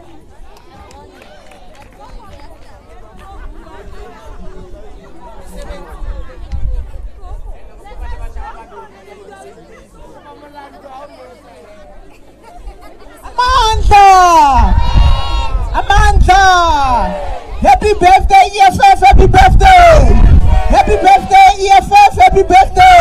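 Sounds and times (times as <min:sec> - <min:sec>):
people chattering: 0:00.0 - 0:23.0.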